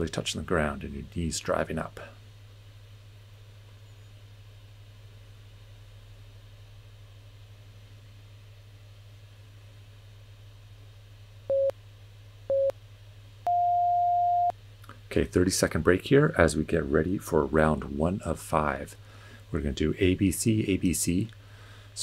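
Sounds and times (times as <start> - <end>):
faint low hum: 0.0 - 22.0
timer beeps: 11.5 - 11.7, 12.5 - 12.7, 13.5 - 14.5.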